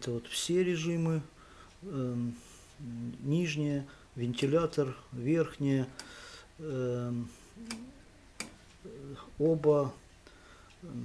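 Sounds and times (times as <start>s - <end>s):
rotary switch clicking: 7.6s - 8.8s.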